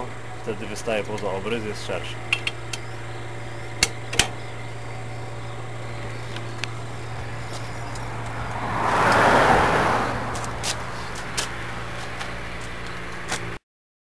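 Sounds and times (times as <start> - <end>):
sharp metallic clicks: 2.3 - 2.9.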